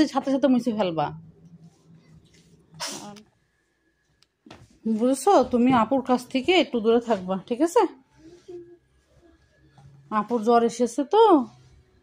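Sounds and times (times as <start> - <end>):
child sneezing: 2.8 - 3.2.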